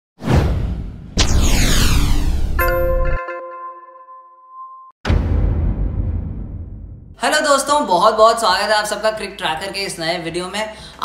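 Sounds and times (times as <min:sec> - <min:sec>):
whoosh sound effects: 0:00.2 - 0:03.1
falling sweep: 0:00.3 - 0:03.2
deep rumble: 0:05.1 - 0:07.2.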